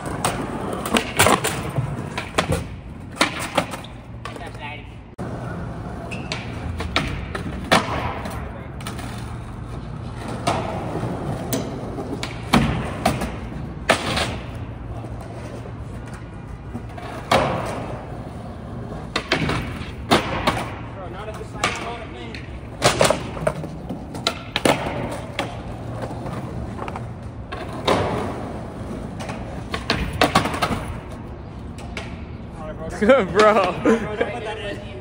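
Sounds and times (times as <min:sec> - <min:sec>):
skateboard clacks and thuds: 0:00.0 - 0:04.6, 0:06.0 - 0:32.2
skateboard wheels rolling on concrete: 0:00.0 - 0:35.0.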